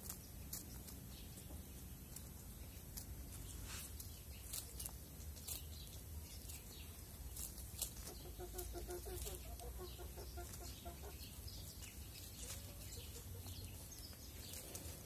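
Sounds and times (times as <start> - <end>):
beaks pecking in dry leaves: 0.0 - 15.0
hen clucking: 7.8 - 15.0.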